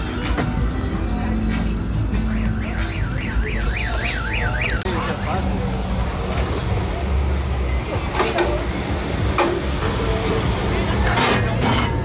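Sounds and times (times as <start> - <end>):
vehicles idling rumble: 0.0 - 12.0.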